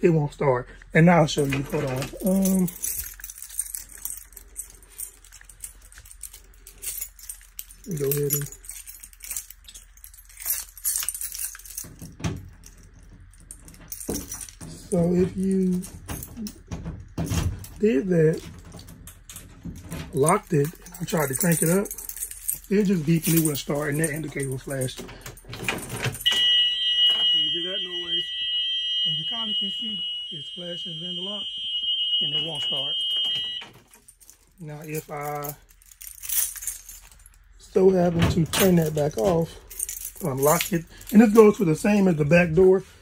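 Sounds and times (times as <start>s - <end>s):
keys jangling: 1.3s - 27.4s, 32.4s - 42.5s
high-pitched warning alarm tone: 26.2s - 33.7s.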